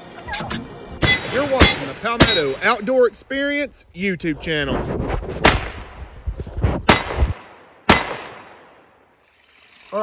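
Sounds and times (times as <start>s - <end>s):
gunshots with echo: 6.9s - 8.8s.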